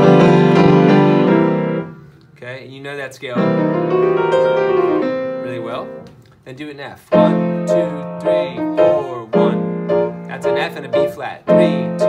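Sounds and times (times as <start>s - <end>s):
upright piano blues chord: 0.0s - 2.0s, 3.4s - 6.1s, 7.1s - 12.0s.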